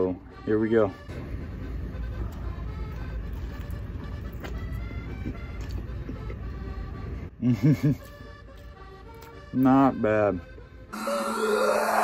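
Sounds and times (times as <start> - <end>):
faint background music: 0.0 - 11.8
chewing crisp batter: 2.2 - 6.6
short muffled laugh: 7.4 - 8.1.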